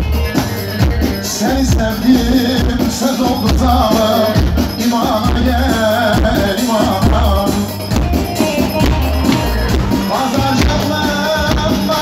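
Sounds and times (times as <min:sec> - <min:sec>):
folk dance music: 0:00.0 - 0:12.0
steady drum beat: 0:00.0 - 0:12.0.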